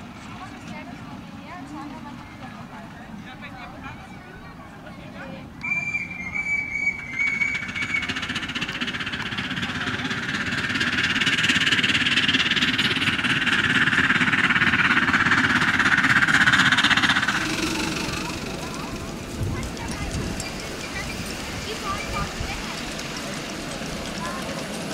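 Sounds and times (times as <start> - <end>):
steam locomotive chuffing: 5.6 - 24.9.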